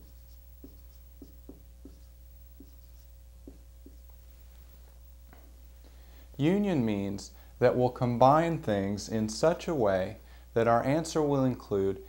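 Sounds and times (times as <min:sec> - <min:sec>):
marker strokes on whiteboard: 0:00.0 - 0:05.0.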